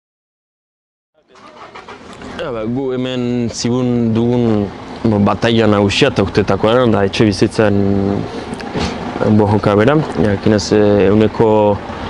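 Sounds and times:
man speaking: 1.2 - 8.3, 9.2 - 11.8
outdoor background noise: 1.2 - 12.0.

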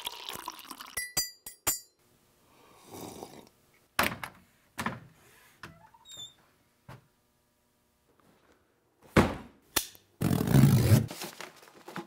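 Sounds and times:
coffee pouring into a mug: 0.0 - 1.0.

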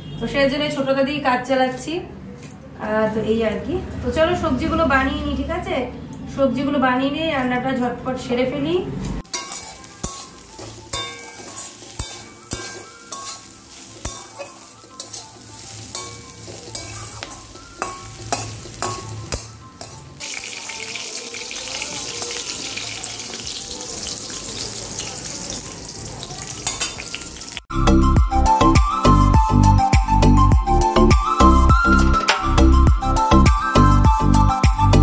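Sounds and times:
metal spatula scraping metal pan: 9.2 - 20.5
hissing sizzle of frying oil: 9.2 - 27.7
light sizzle: 9.2 - 27.7.

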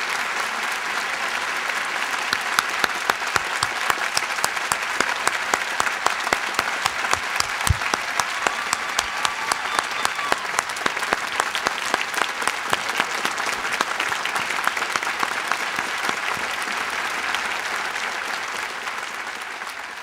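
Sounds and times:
large crowd applauding: 0.0 - 20.0.

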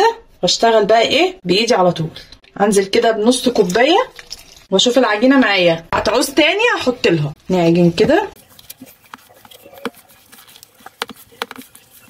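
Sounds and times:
hands kneading wet dough: 7.3 - 12.0.

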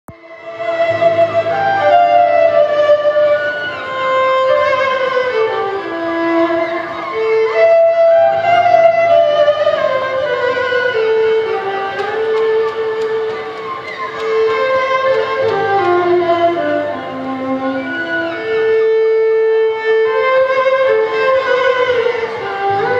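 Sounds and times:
solo violin bowed melody: 0.1 - 22.9.

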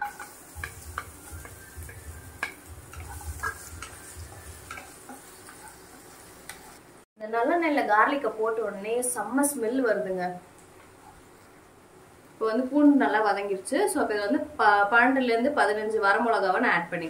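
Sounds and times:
wooden spatula scraping a pan: 0.0 - 6.9
garlic sizzling in hot oil: 0.0 - 7.1
woman talking: 7.2 - 10.4, 12.4 - 17.0.

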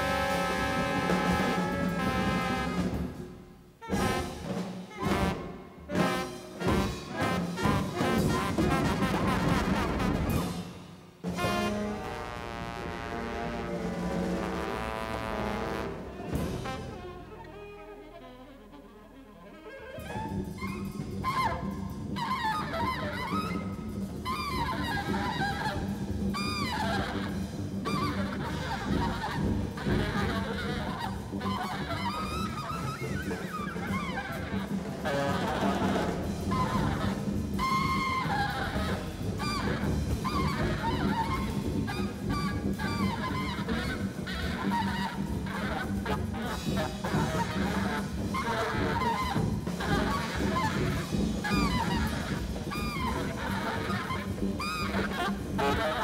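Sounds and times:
bass: 0.0 - 56.0
drums: 0.0 - 56.0
saxophone high cries: 26.4 - 56.0.

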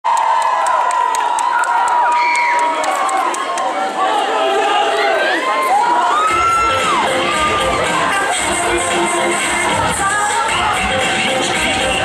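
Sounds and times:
audience cheering and screaming: 0.1 - 10.8.

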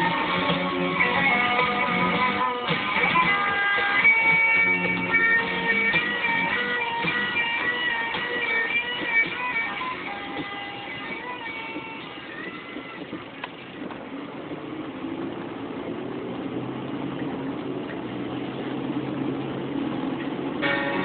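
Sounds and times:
guitar music: 0.0 - 14.0, 16.6 - 21.0
engine and road rumble: 0.0 - 21.0
low engine hum: 0.0 - 21.0.

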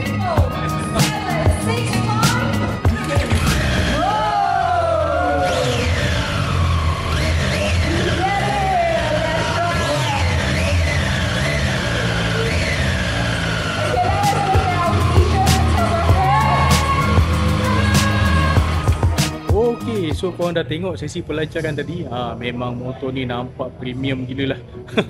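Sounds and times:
motorcycle engines revving: 0.0 - 20.4
music playing: 0.0 - 25.0.

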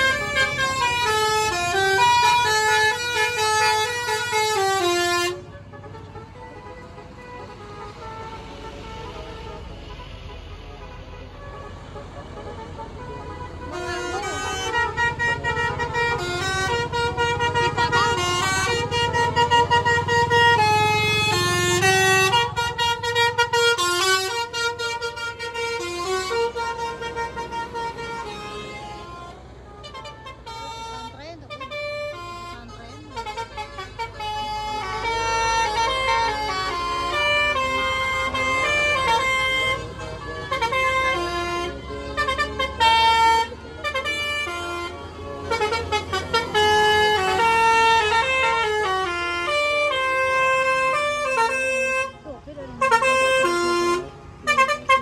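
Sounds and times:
bus horns playing tunes: 0.0 - 55.0
low engine rumble: 0.0 - 55.0.

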